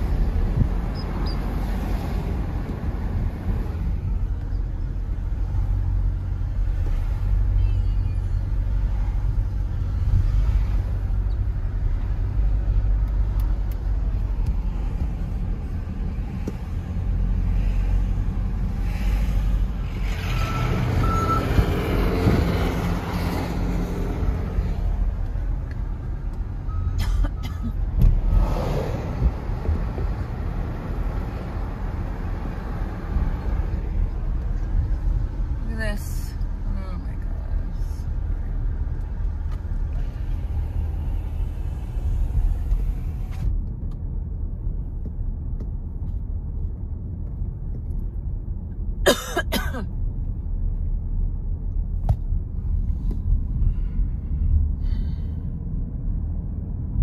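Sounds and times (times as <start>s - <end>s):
car interior rumble: 0.0s - 57.0s
passing traffic: 0.0s - 57.0s.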